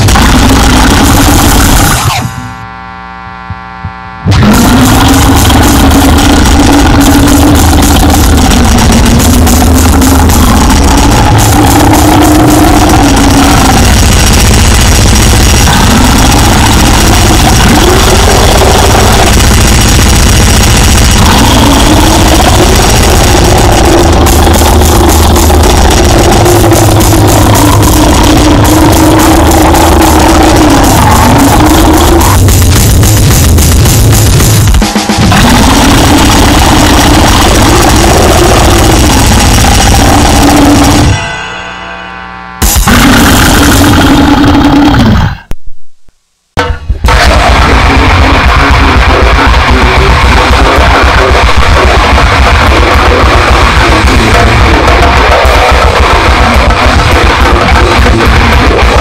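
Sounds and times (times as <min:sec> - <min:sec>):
rapid drum hits: 0:00.0 - 0:02.4, 0:04.3 - 0:41.6, 0:42.6 - 0:45.2, 0:46.6 - 0:59.0
harsh distorted noise music: 0:00.0 - 0:45.7, 0:46.3 - 0:59.0.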